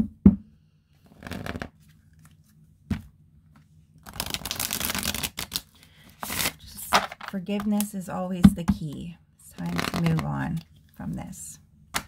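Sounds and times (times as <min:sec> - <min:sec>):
cards being shuffled: 0:01.0 - 0:07.8, 0:09.6 - 0:10.7.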